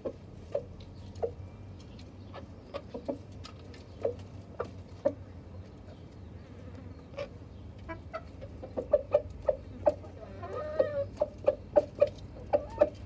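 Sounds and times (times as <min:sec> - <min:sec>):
chickens clucking: 0:00.0 - 0:13.0.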